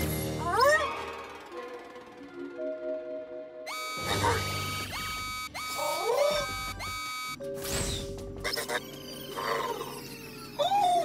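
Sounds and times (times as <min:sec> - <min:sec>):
cartoon synthesizer music: 0:03.7 - 0:07.3.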